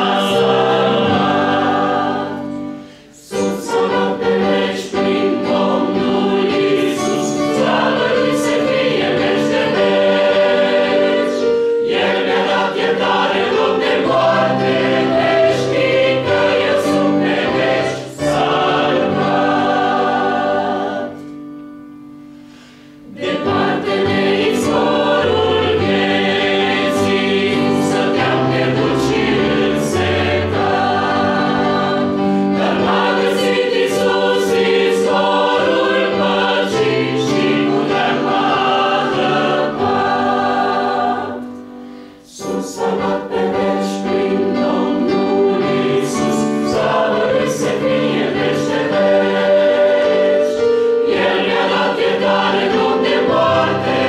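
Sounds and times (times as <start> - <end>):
choir singing: 0.0 - 21.4, 23.0 - 54.0.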